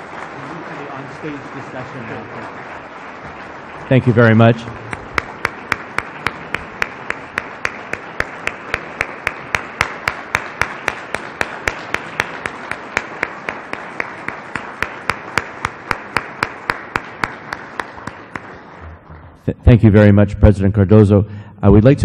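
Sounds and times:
close hand claps: 0.0 - 19.2
audience applauding: 0.0 - 19.4.

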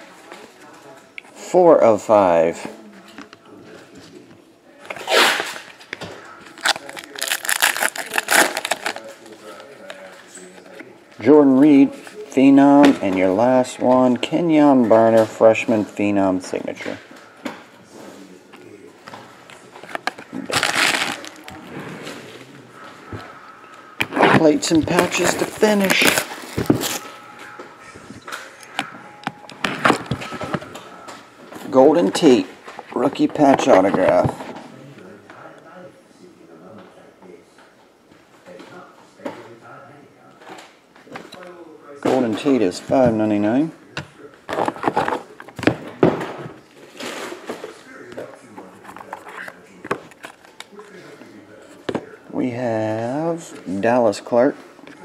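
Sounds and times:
foil wrapper crinkling and tearing: 6.6 - 9.3, 20.5 - 21.6, 24.9 - 27.1.

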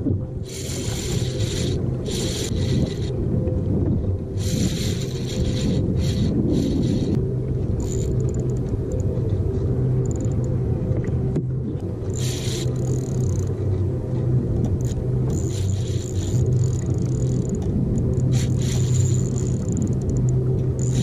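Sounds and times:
wind and sea rumble: 0.0 - 21.0
fishing reel buzzing: 0.4 - 3.1, 4.4 - 7.2, 7.8 - 9.0, 10.0 - 10.4, 12.0 - 13.6, 14.8 - 21.0.

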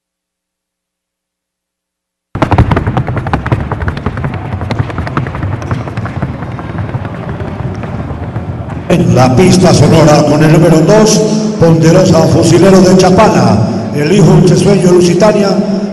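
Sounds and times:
horse hoofbeats on wooden board: 2.4 - 8.9.

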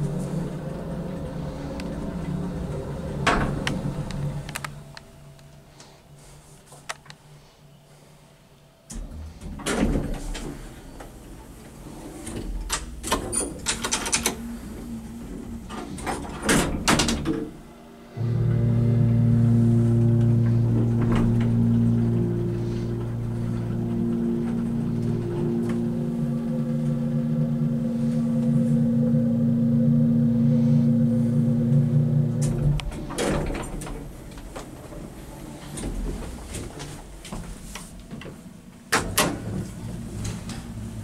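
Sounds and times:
elevator car and doors clunking: 0.0 - 5.0, 8.9 - 41.0
elevator pump motor humming: 0.0 - 5.4, 13.6 - 41.0.

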